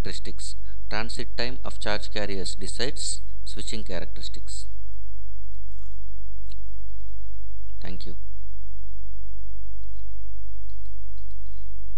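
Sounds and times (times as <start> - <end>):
low electrical hum: 0.0 - 11.9
clicking: 10.7 - 11.4.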